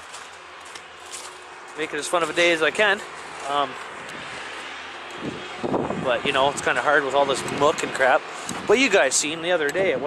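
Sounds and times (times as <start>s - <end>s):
wind buffeting microphone: 2.5s - 10.0s.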